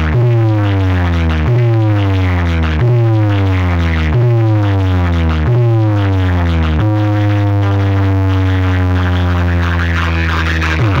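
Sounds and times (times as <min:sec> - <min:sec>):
deep bass note: 0:00.0 - 0:11.0.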